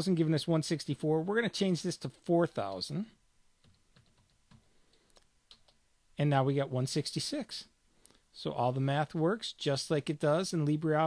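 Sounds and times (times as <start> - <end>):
typing on computer keyboard: 3.6 - 4.7.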